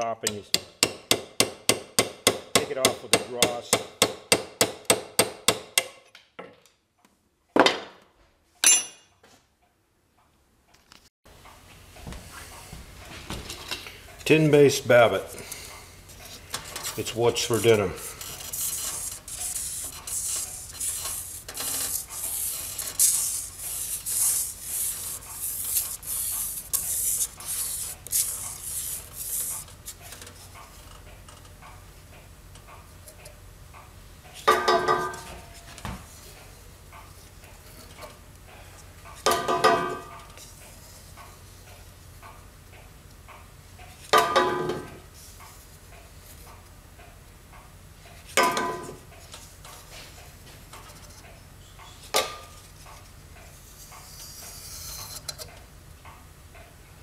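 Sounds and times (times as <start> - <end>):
paddle scraping in metal pot: 16.2 - 30.2.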